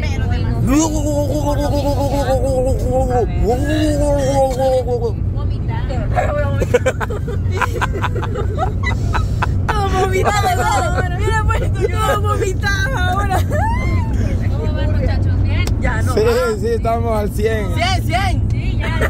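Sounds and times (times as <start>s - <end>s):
van road and engine rumble: 0.0s - 19.0s.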